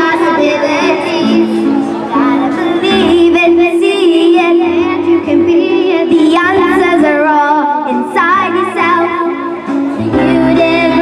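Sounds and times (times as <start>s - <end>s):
backing music with bass line: 0.0s - 11.0s
girl singing into microphone: 0.0s - 11.0s.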